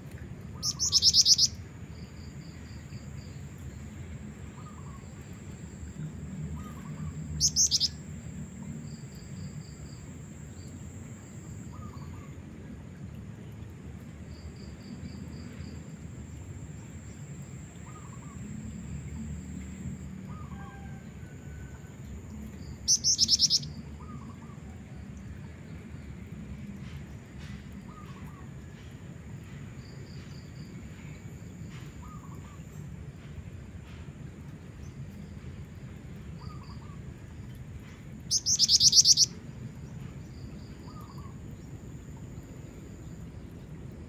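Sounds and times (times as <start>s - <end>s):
bird giving high trills: 0.6s - 1.6s, 6.6s - 7.9s, 22.9s - 23.7s, 38.3s - 39.3s
faint chirps: 0.6s - 3.9s, 4.6s - 12.4s, 14.4s - 24.8s, 37.8s - 43.4s
high insect drone: 0.6s - 12.8s, 14.0s - 24.8s, 28.7s - 34.0s, 38.2s - 43.9s.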